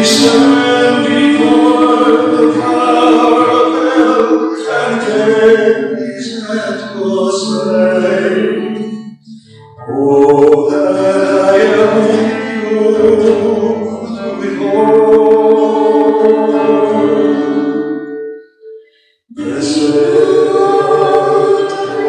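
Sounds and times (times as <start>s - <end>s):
worship song with acoustic guitar: 0.0s - 22.0s.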